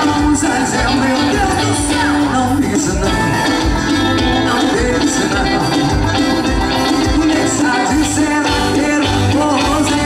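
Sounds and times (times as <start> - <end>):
conga drums: 0.0 - 10.0
live band music: 0.0 - 10.0
woman singing: 0.8 - 3.0.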